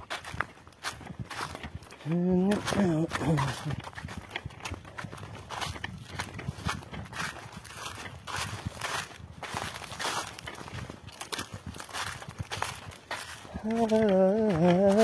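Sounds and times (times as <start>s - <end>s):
footsteps crunching dry leaves: 0.0s - 15.0s.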